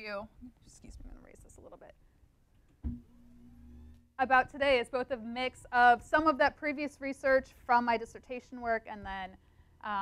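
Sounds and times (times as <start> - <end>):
electric lift motor humming: 3.1 - 4.0.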